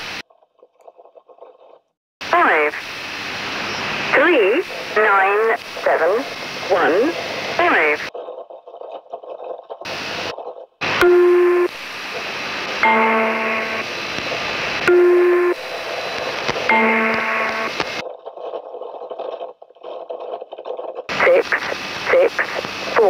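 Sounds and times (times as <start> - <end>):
radio hiss and crackle: 0.0 - 0.2, 2.2 - 8.2, 9.9 - 19.5, 21.0 - 23.0
electronic tone signal: 11.0 - 11.8, 12.8 - 13.9, 14.8 - 15.7, 16.6 - 17.9.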